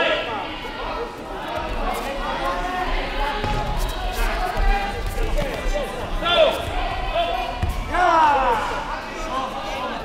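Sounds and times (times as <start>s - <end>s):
people shouting: 6.2s - 9.0s.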